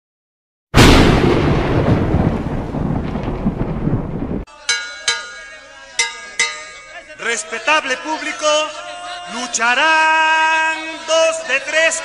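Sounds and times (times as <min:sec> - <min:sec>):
thunderclap rolling into rumble: 0:00.8 - 0:04.5
bell struck: 0:04.6 - 0:07.5.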